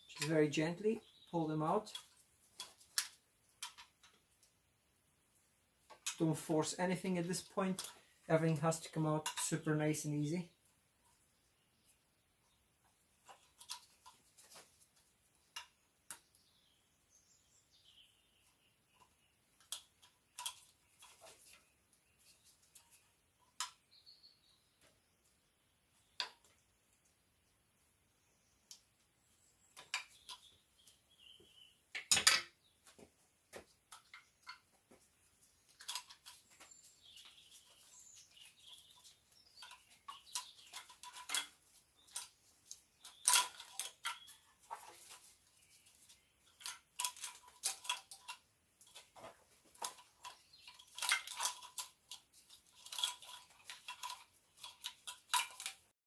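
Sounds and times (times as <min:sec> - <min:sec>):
wiring harness rattling: 0:33.9 - 0:55.9.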